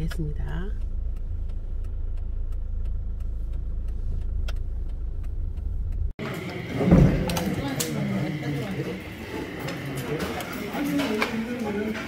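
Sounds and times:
car engine running: 0.0s - 9.6s.

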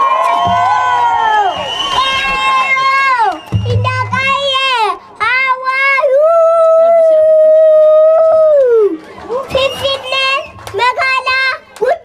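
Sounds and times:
child singing: 3.6s - 6.6s.

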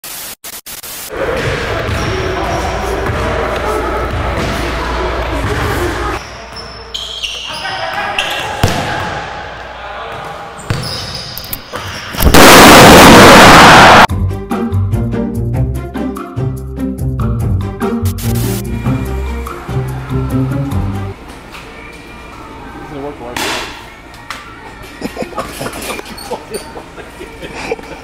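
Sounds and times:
players' voices echoing: 1.1s - 10.9s
loud harsh noise burst: 12.2s - 14.1s.

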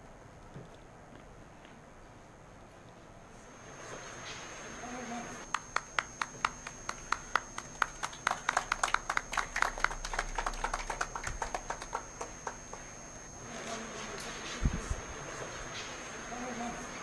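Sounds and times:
people clapping: 5.4s - 13.7s.

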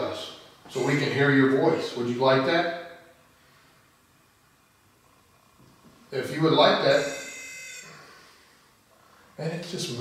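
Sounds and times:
short high electronic buzz: 6.8s - 8.6s.

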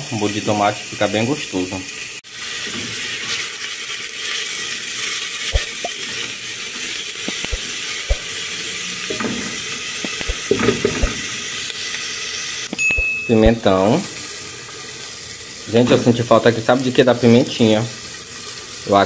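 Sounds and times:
onion sizzling in hot oil: 0.4s - 19.0s.

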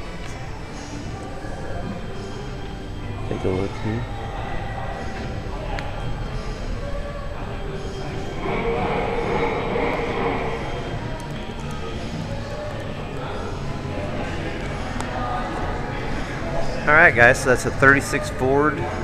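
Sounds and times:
indistinct distant voices: 0.0s - 19.0s.

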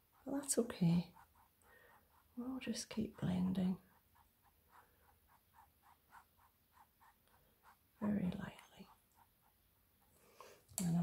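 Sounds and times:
brush swishing on canvas: 0.0s - 8.0s.

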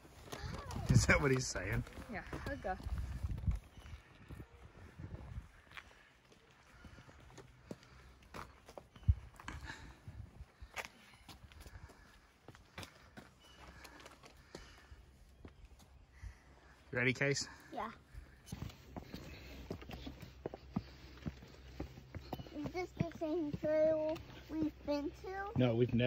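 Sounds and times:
footsteps and scuffs: 18.4s - 26.0s.

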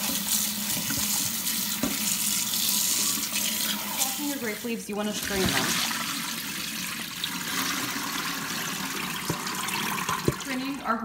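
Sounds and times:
water running from tap: 0.0s - 11.0s.

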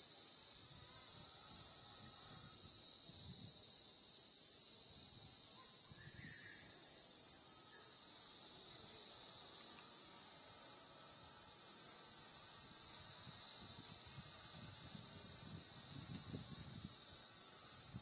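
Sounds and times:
high-pitched insect chorus: 0.0s - 18.0s.

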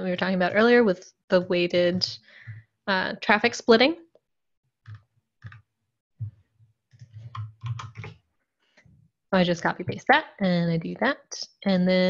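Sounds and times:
computer keyboard keystrokes: 7.3s - 8.2s.

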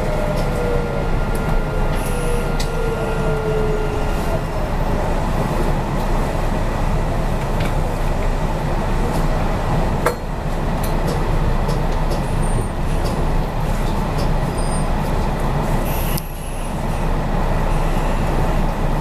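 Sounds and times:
train motors whining: 0.0s - 5.4s
wheels rumbling on rail: 0.0s - 19.0s.

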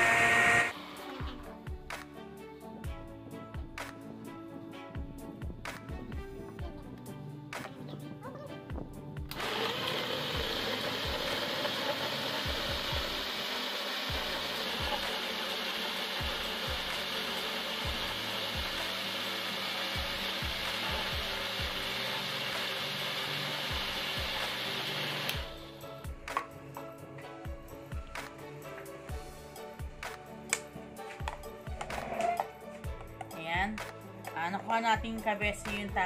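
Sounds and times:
blender motor whirring: 0.0s - 1.6s, 9.3s - 25.8s.

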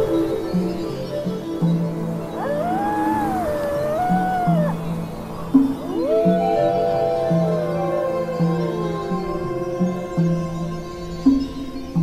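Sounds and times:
slow instrumental music: 0.0s - 12.0s
wolf howling: 2.3s - 10.6s.

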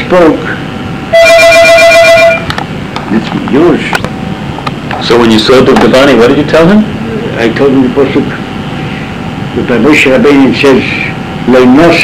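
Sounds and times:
electronic telephone ring: 1.1s - 2.5s.

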